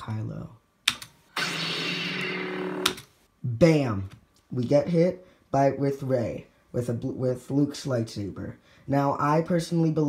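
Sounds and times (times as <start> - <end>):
lightsaber igniting and humming: 1.3 - 3.1.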